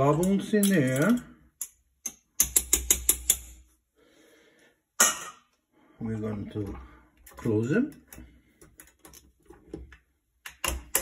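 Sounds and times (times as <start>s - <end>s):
metal tongs clicking against glass jar: 0.2s - 3.5s.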